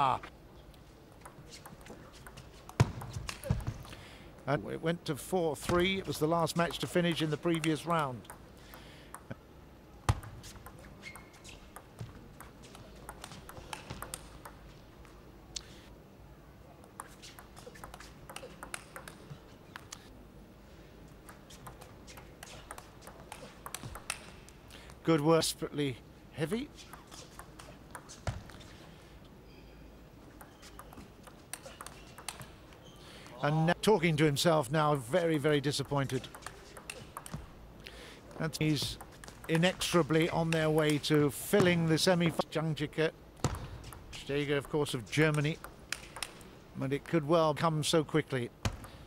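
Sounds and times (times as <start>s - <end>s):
low hall background: 0.0s - 49.0s
ball tapping on table and bats: 1.2s - 3.9s, 6.7s - 9.4s, 10.1s - 14.6s, 16.8s - 19.9s, 21.2s - 24.4s, 26.9s - 28.6s, 30.3s - 32.6s, 35.8s - 37.5s, 38.6s - 41.8s, 43.4s - 46.5s, 48.6s - 49.0s.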